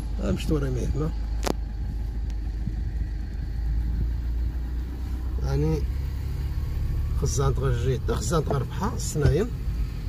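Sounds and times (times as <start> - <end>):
car cabin low rumble: 0.0 - 10.0.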